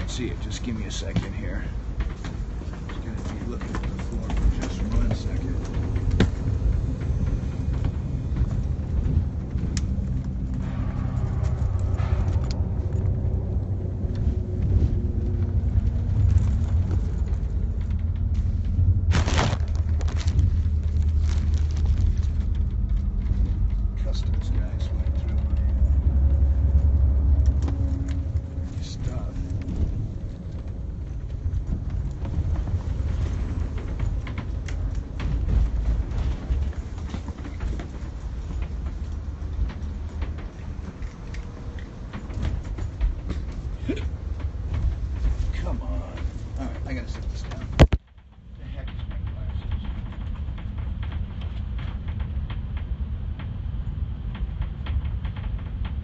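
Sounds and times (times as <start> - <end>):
vehicle rumble from inside: 3.0 - 47.9.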